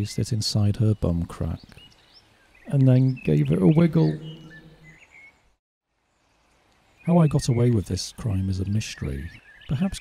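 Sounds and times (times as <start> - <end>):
faint bird chirps: 0.0 - 10.0
man's voice held tone: 2.7 - 4.8, 7.1 - 10.0.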